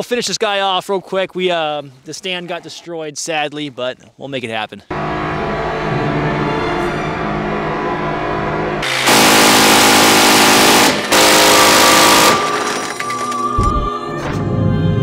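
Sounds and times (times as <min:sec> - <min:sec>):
minigun firing bursts: 0:08.8 - 0:12.8.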